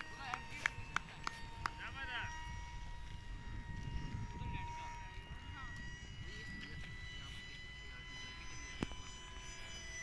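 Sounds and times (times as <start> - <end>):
model airplane motors droning: 0.0 - 10.0.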